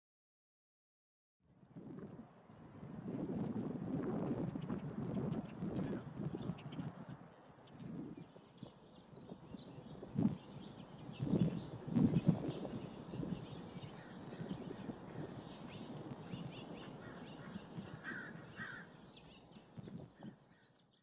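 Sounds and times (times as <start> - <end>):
songbird high call notes: 8.2 - 21.0.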